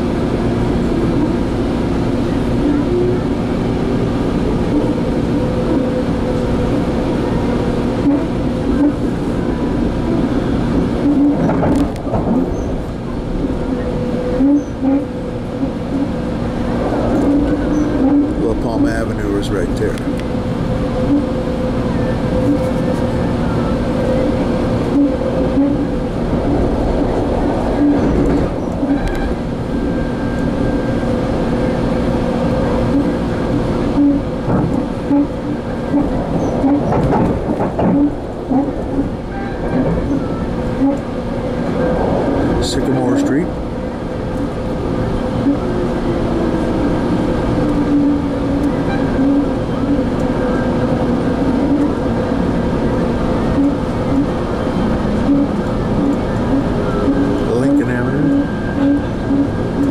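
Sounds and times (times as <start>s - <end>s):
train rumble and hum: 0.0s - 59.9s.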